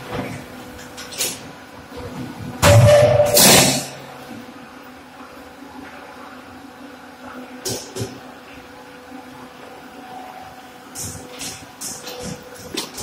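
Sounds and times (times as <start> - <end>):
machinery humming: 0.0 - 13.0.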